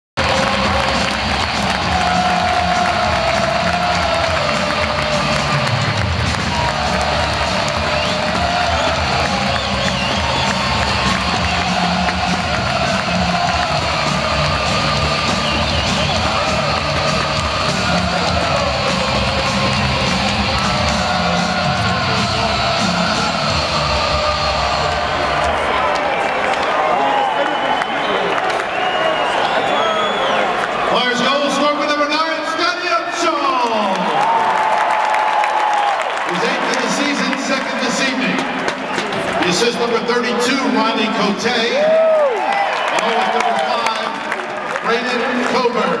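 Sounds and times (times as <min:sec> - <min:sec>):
loud music over public address: 0:00.2 - 0:26.9, 0:30.8 - 0:34.3, 0:36.2 - 0:42.2
crowd cheering: 0:00.2 - 0:46.0.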